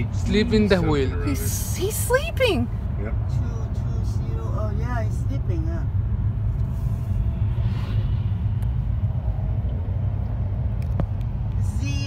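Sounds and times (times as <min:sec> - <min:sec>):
car road noise rumble: 0:00.0 - 0:12.0.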